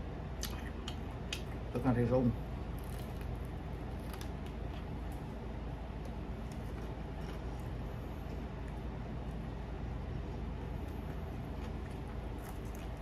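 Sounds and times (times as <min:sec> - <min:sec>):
low room hum: 0:00.0 - 0:13.0
person chewing fried chicken: 0:02.6 - 0:13.0
crust crunching: 0:02.7 - 0:05.4, 0:10.5 - 0:13.0.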